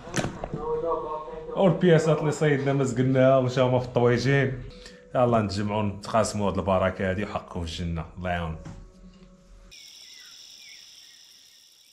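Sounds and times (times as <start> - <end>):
faint gliding chirps: 9.3 - 11.9
crickets chirping: 9.7 - 11.9.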